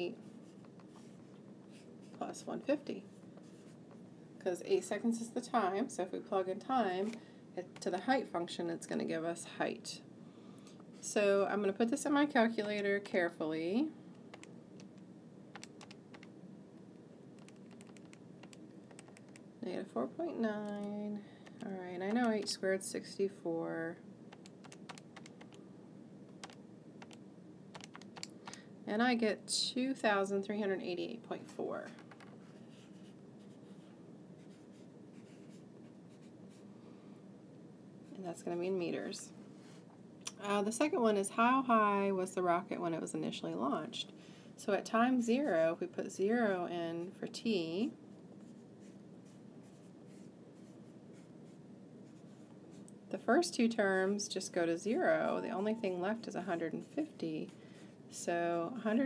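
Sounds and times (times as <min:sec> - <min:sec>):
faint steady hum: 0:00.0 - 0:59.0
low room hiss: 0:00.0 - 0:59.0
calculator keys clicking: 0:14.3 - 0:15.0, 0:15.6 - 0:16.3, 0:17.4 - 0:19.4, 0:24.3 - 0:25.6, 0:26.3 - 0:27.2, 0:27.8 - 0:28.6.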